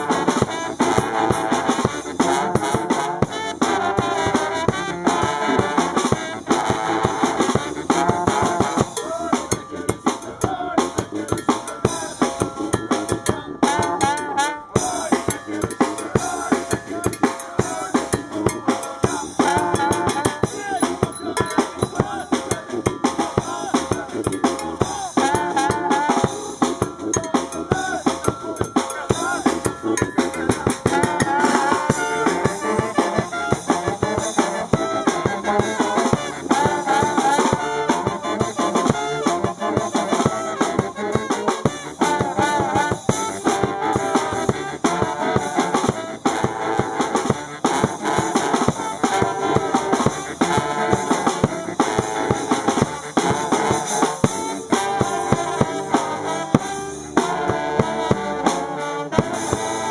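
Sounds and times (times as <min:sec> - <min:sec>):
brass band playing: 0:00.0 - 0:59.9
drum kit: 0:00.0 - 0:59.9.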